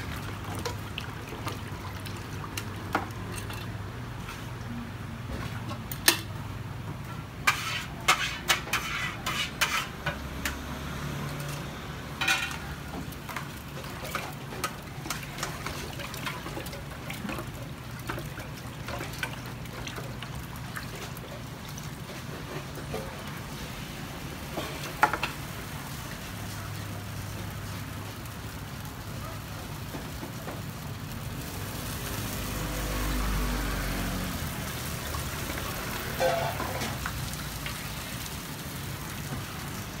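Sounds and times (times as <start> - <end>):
food sizzling on a griddle: 7.4 - 16.2, 21.6 - 40.0.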